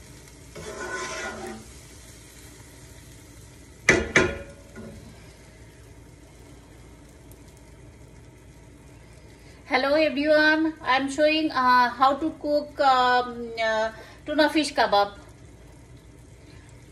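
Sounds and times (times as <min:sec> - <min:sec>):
low sizzle: 0:00.0 - 0:16.9
wooden spatula scraping frying pan: 0:00.5 - 0:01.8
utensil knocking on pan: 0:03.9 - 0:04.6.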